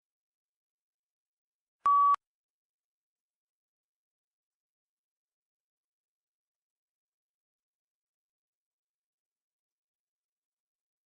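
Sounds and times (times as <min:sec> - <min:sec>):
short electronic beep: 0:01.9 - 0:02.2.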